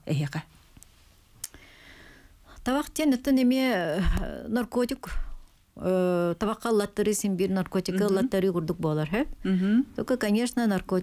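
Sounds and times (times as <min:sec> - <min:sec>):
woman's voice: 0:02.6 - 0:11.0.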